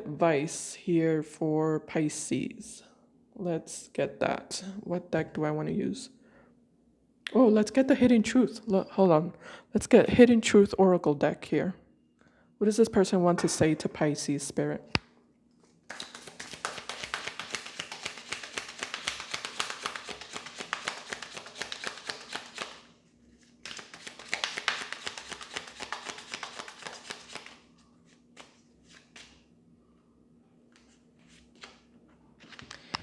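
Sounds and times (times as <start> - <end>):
cards being shuffled: 15.6 - 29.4, 30.7 - 33.0.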